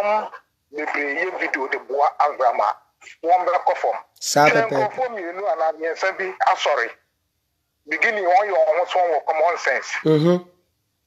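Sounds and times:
man talking through phone speaker: 0.0s - 7.0s, 7.9s - 10.4s.

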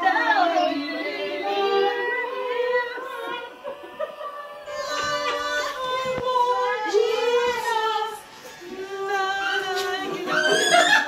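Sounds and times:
high voice singing: 0.0s - 11.0s.

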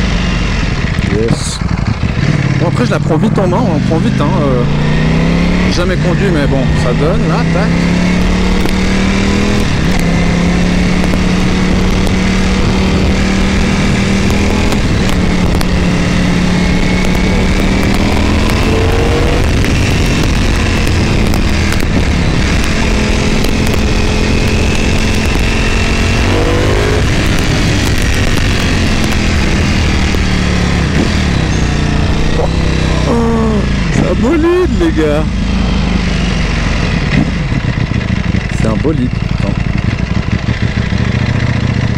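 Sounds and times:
motorcycle engine running: 0.0s - 41.9s
wind rumble on microphone: 8.1s - 34.1s.

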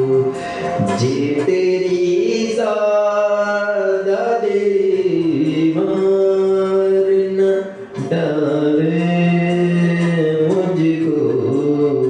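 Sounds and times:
karaoke backing track: 0.0s - 12.0s
man singing long held notes: 0.0s - 12.0s.

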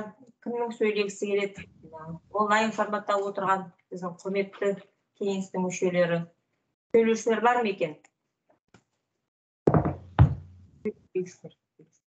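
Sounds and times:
dull knocks on microphone: 9.7s - 10.6s.

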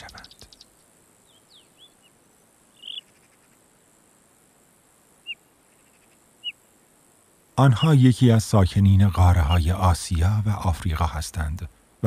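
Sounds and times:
faint outdoor ambience: 0.0s - 12.0s
short high bird chirps: 2.8s - 3.2s.

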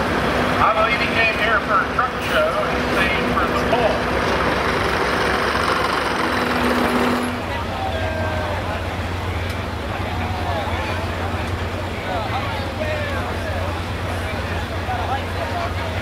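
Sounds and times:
diesel truck engine running: 0.0s - 16.0s
voices in the background: 7.2s - 16.0s.

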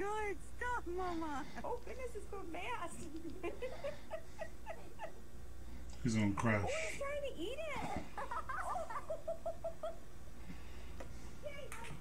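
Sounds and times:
person giggling: 3.0s - 5.2s.

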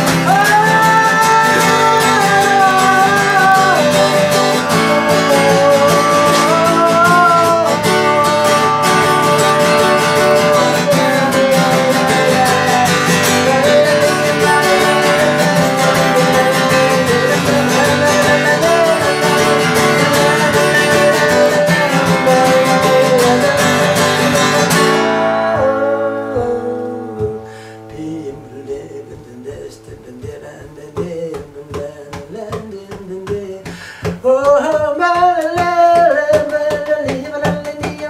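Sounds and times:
acoustic guitar strumming: 0.0s - 38.0s
man singing: 0.0s - 38.0s.

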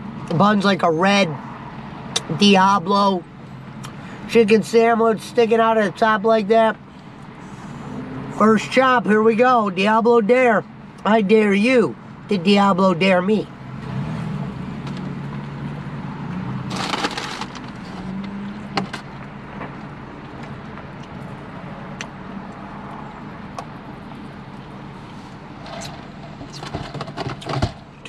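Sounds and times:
loud crunch: 16.6s - 19.8s
clicks and rustles: 16.7s - 21.2s, 25.6s - 28.0s.

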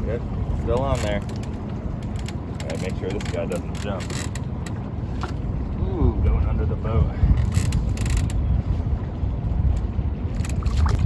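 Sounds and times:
boat motor rumbling: 0.0s - 11.0s
wind on microphone: 4.9s - 11.0s.

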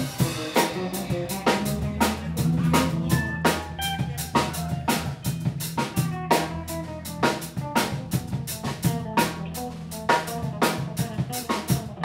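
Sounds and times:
drum kit beat: 0.0s - 12.0s
electric bass low notes: 0.0s - 12.0s
electric guitars playing: 0.0s - 12.0s.

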